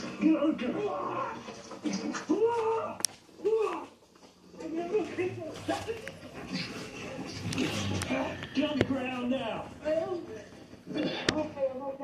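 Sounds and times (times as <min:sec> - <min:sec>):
muffled voices: 0:00.0 - 0:12.0.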